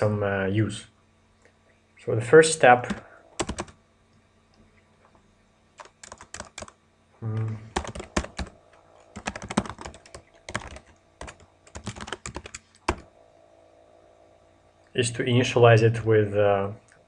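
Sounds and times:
computer keyboard typing: 0:02.8 - 0:03.8, 0:05.8 - 0:06.8, 0:07.7 - 0:13.1.

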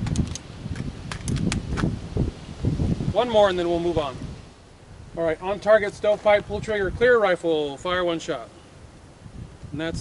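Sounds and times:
rifle handling clicks: 0:00.0 - 0:01.8
wind rumble on microphone: 0:00.0 - 0:10.0.

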